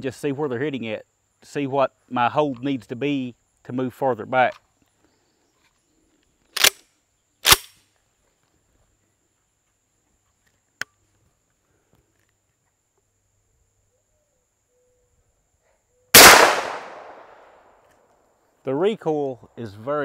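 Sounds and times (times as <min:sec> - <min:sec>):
shotgun shot echoing: 0:16.2 - 0:17.4.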